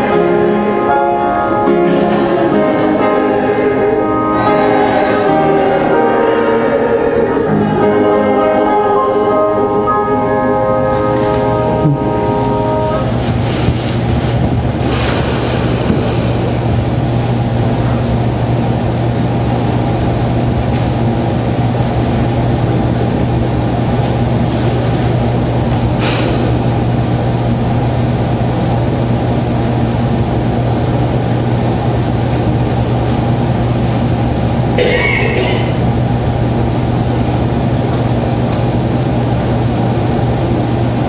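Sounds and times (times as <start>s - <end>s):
music: 0.0s - 13.2s
low rumble with hum: 12.0s - 41.0s.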